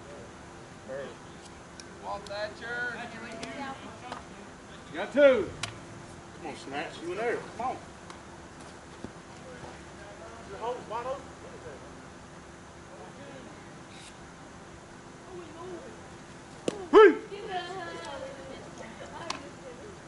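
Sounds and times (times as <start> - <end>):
distant players calling out: 16.6 - 20.0.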